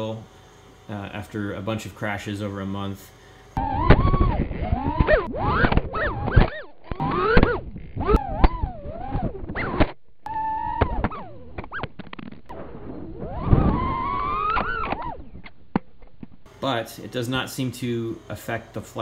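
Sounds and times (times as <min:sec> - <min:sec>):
drone motors whining: 0:03.5 - 0:16.4.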